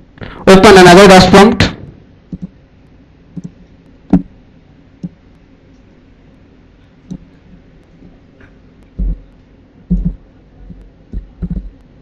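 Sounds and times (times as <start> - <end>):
computer keyboard keys thudding: 2.3 - 2.6, 9.9 - 11.8.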